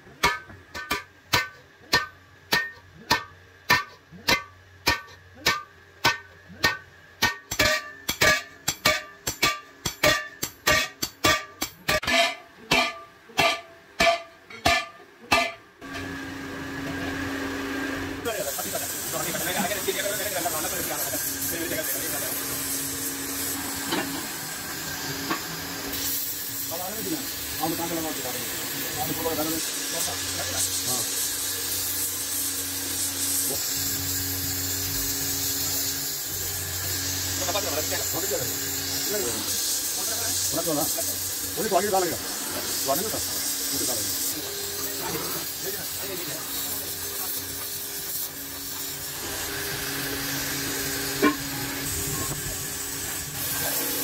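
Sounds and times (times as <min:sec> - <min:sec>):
metallic strikes on metal pot: 0:00.1 - 0:15.7
gas welding torch hissing: 0:18.2 - 0:54.0.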